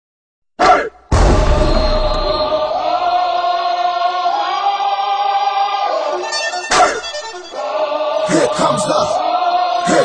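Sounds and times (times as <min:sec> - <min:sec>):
sustained choir-like vocal chord: 0:01.5 - 0:06.6, 0:07.3 - 0:10.0.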